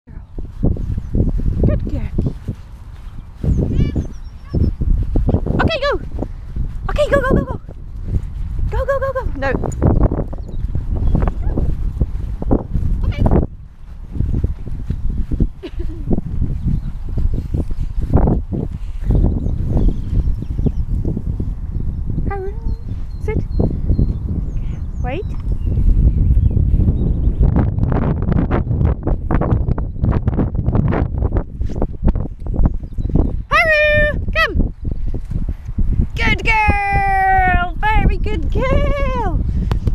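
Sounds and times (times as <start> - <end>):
wind buffeting microphone: 0.0 - 39.9.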